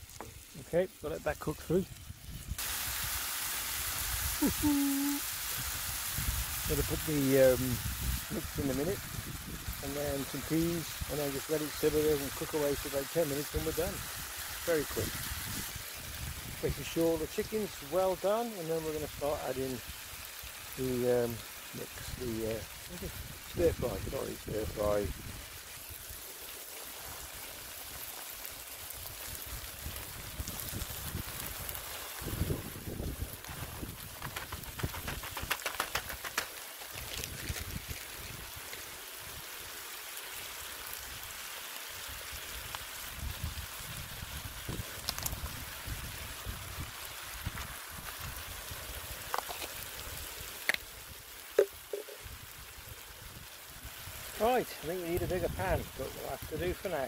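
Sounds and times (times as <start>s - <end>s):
chicken sizzling in a pan: 0.0s - 57.0s
wind rumble on microphone: 1.8s - 2.6s, 5.5s - 11.1s, 13.6s - 17.0s, 23.0s - 25.6s, 29.0s - 36.2s, 36.9s - 38.7s, 42.6s - 49.2s
clatter of food stirred in pan: 34.2s - 36.6s.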